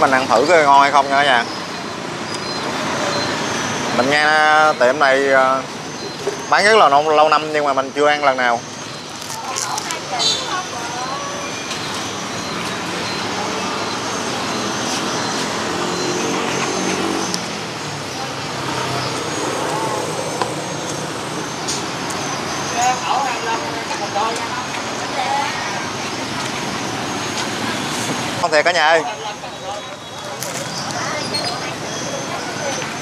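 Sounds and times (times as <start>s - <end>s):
people talking: 0.0s - 2.0s, 2.8s - 8.6s, 9.2s - 17.1s, 21.6s - 33.0s
street traffic noise: 0.0s - 33.0s
vehicle engine passing: 12.4s - 24.9s.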